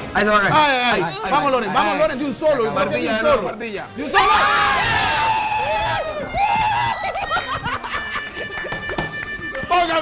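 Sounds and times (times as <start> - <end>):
people screaming: 4.1 - 7.6.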